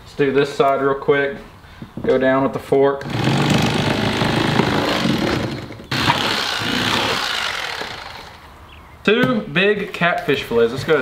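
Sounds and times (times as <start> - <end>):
electric knife motor buzzing: 3.0 - 8.5.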